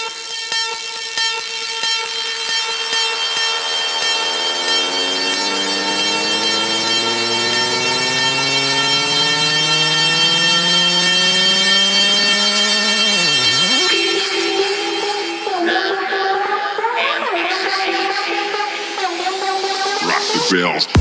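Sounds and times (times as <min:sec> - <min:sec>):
synth riser rising in pitch: 0:00.0 - 0:14.8
sustained high synth chord: 0:00.0 - 0:15.8.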